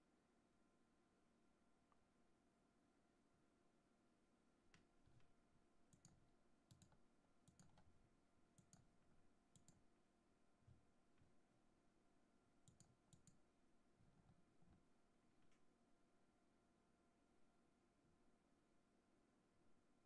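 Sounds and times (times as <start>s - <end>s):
computer controls clicking: 5.9s - 8.0s, 8.6s - 9.8s, 12.6s - 13.4s.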